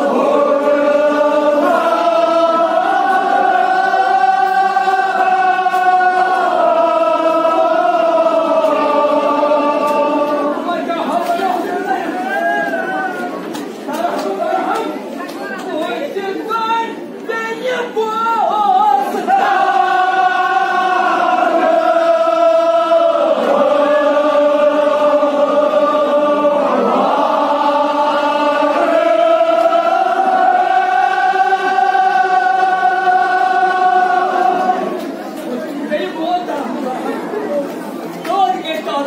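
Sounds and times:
religious chanting: 0:00.0 - 0:15.2, 0:15.9 - 0:39.0
murmur of crowd in hall: 0:00.0 - 0:39.0.

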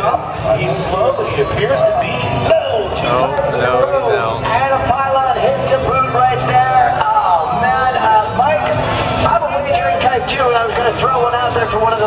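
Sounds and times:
man commentating over loudspeaker: 0:00.0 - 0:12.0.

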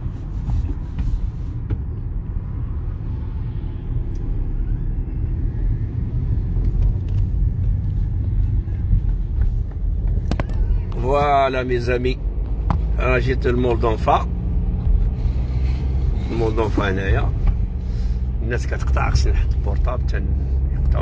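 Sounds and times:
car engine rumble: 0:00.0 - 0:21.0
tyres on road: 0:00.0 - 0:21.0.

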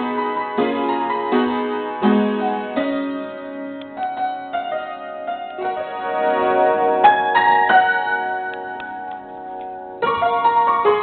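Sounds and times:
piano chord ringing: 0:00.0 - 0:11.0.

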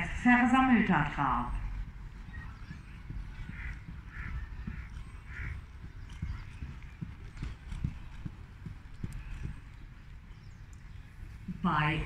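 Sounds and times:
hoofbeats on sand: 0:01.6 - 0:11.5.

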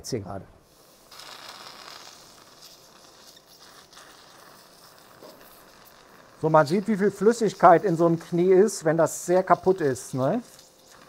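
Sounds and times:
soft steady hiss: 0:00.0 - 0:11.0.

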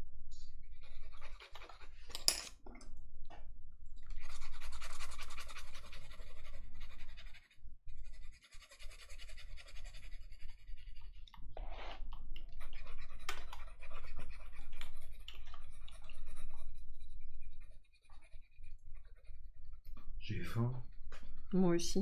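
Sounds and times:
pencil scratching on paper: 0:00.6 - 0:02.1, 0:04.1 - 0:12.0, 0:12.6 - 0:21.3.

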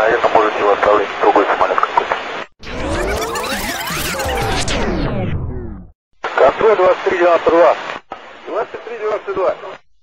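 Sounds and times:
fast-forward sweep sound effect: 0:02.6 - 0:06.0
radio hiss: 0:06.2 - 0:09.8.

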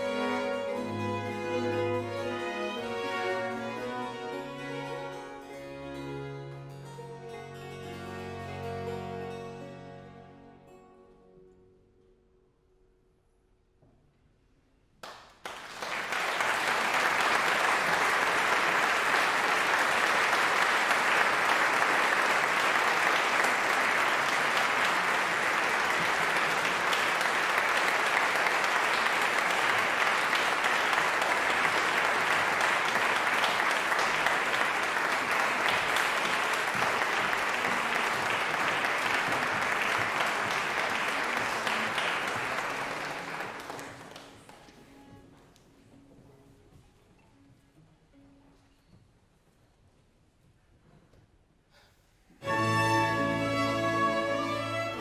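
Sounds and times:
audience applauding: 0:15.0 - 0:44.8, 0:52.4 - 0:55.0.

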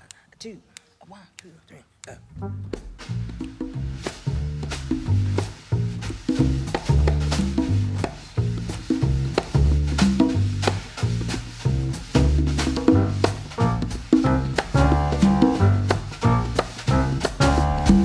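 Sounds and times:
heavy low bass notes: 0:02.3 - 0:18.0
jazz quartet playing swing: 0:02.3 - 0:18.0
sharp drum strokes: 0:02.7 - 0:18.0.

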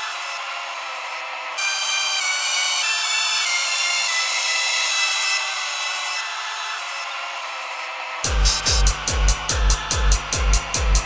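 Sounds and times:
harsh synthesized noise drone: 0:00.0 - 0:11.0
steady high tones: 0:08.2 - 0:11.0.

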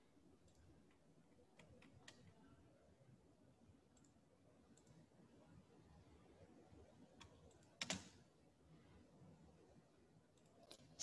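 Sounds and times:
computer mouse clicks: 0:00.4 - 0:02.4, 0:03.9 - 0:05.0, 0:07.2 - 0:08.2, 0:10.4 - 0:11.0.

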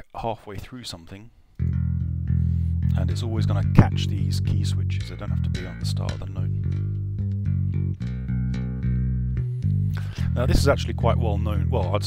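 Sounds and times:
electric bass line: 0:01.6 - 0:12.0.

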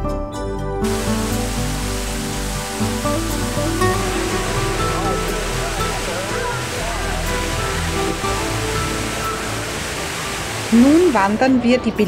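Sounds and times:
background music: 0:00.0 - 0:12.0
fountain water splashing: 0:00.8 - 0:12.0.

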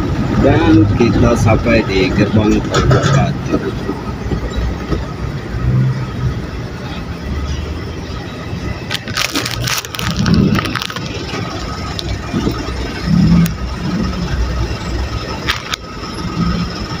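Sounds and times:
car engine rumble: 0:00.0 - 0:17.0
crackling and clicking: 0:08.9 - 0:13.7, 0:15.4 - 0:15.9.

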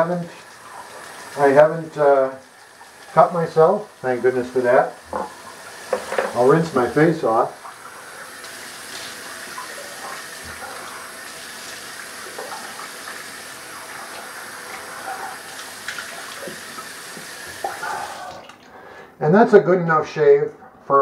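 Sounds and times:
sink tap running: 0:00.0 - 0:18.6
face rinsed with water: 0:00.0 - 0:18.9.

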